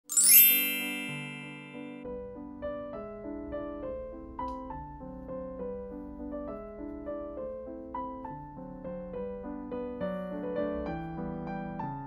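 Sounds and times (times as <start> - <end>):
bright sparkling chime: 0.0 - 2.1.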